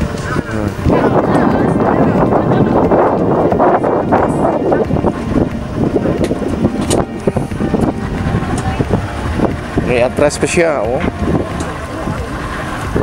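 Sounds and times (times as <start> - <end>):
boat motor running: 0.0 - 13.0
people's voices: 0.0 - 13.0
wind buffeting microphone: 0.0 - 13.0.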